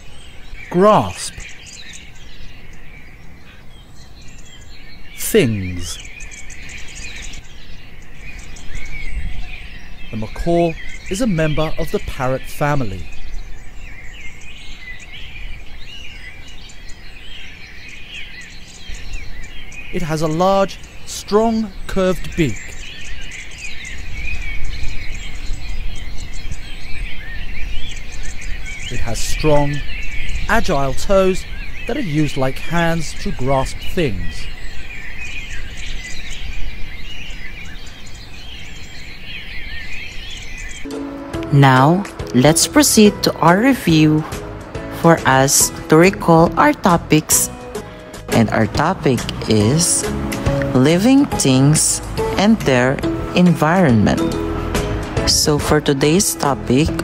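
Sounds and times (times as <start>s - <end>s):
low background noise: 0.0s - 26.9s
birds chirping: 0.0s - 57.0s
low outdoor background noise: 0.0s - 57.0s.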